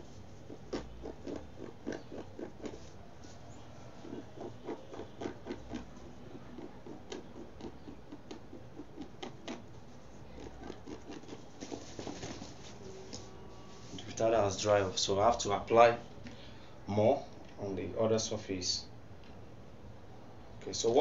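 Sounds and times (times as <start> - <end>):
fingernails scratching print on fabric: 0.0 - 12.9.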